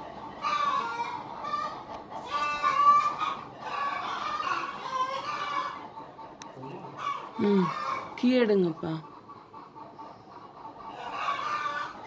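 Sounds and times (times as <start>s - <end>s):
chickens clucking and squawking: 0.0s - 12.0s.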